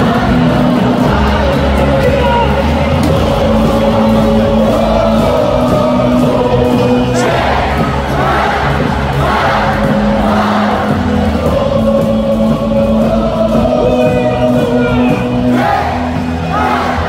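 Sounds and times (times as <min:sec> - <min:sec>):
amplified music: 0:00.0 - 0:17.0
crowd chanting: 0:00.0 - 0:17.0
crowd singing in unison: 0:00.0 - 0:17.0.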